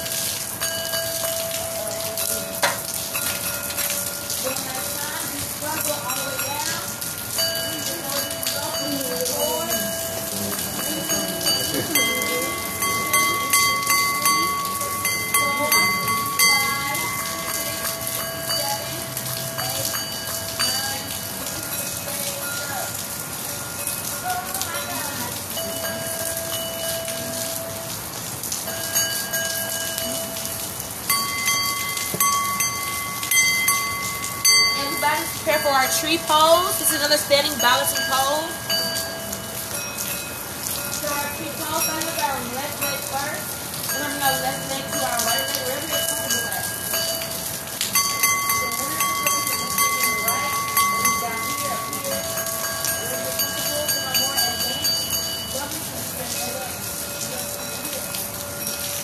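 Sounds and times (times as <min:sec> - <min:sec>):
singing bowls ringing: 0:00.0 - 0:59.0
steady rain: 0:00.0 - 0:59.0.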